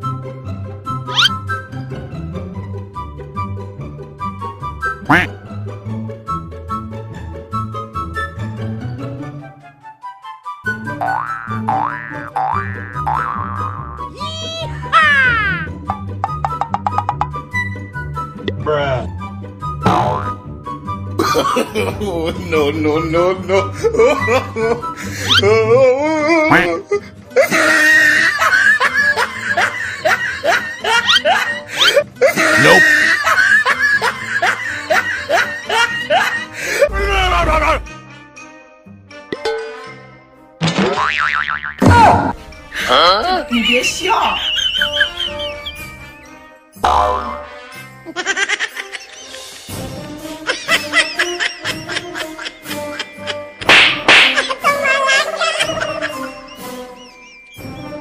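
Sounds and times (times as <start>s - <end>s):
comedic background music: 0.0s - 58.0s
person laughing: 21.2s - 22.5s, 23.5s - 37.9s, 42.8s - 45.7s, 48.1s - 49.8s, 50.4s - 53.6s, 54.2s - 57.1s
whip-crack sound effect: 53.6s - 54.5s.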